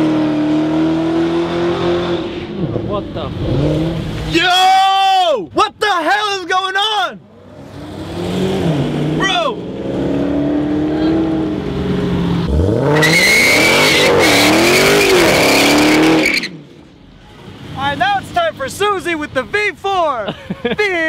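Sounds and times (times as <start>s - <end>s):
car engine revving: 0.0s - 4.6s, 7.2s - 18.5s
tyres squealing: 12.8s - 16.6s.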